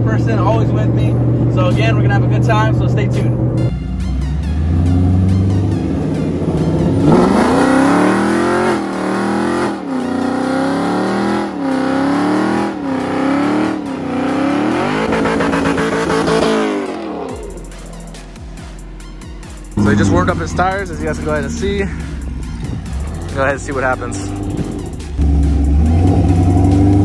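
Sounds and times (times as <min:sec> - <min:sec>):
car engine revving at full throttle: 0:00.0 - 0:27.0.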